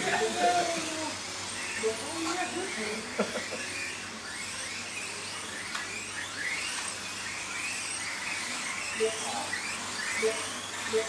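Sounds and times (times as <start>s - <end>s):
small electric motors whining: 0.0s - 11.0s.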